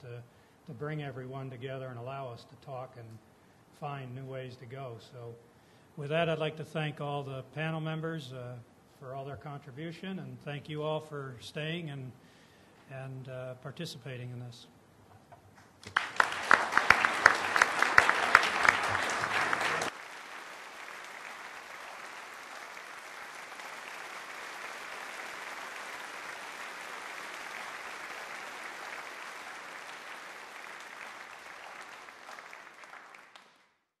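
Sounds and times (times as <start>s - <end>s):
audience applauding: 15.8s - 33.8s.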